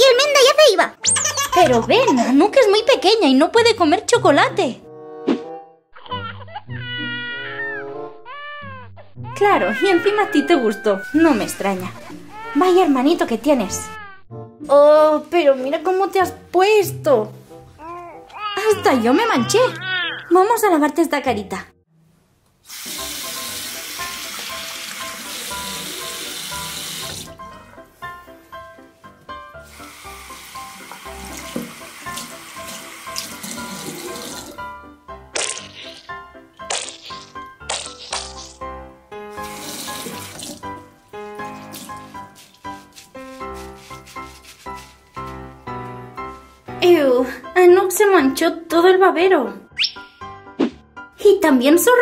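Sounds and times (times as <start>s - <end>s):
background music: 0.0s - 22.0s, 22.8s - 52.0s
sponge rinsed under water: 29.7s - 34.6s, 39.3s - 45.3s
tap running into washbasin: 29.8s - 34.6s, 39.4s - 40.8s.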